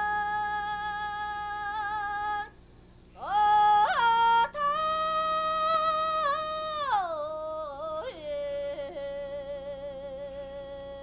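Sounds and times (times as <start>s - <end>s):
person singing unaccompanied: 0.0s - 11.0s.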